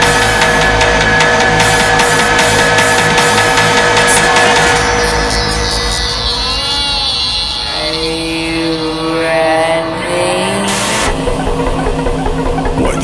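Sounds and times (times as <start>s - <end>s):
electronic dance music: 0.0s - 13.0s
swirling synth tones: 0.0s - 13.0s.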